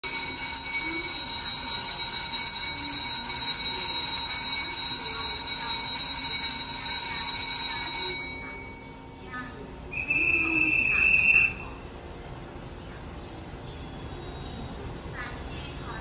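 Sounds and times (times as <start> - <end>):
platform bell ringing: 0.0 - 9.3.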